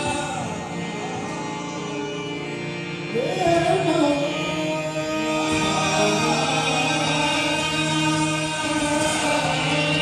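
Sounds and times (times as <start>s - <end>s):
harmonium drone: 0.0s - 10.0s.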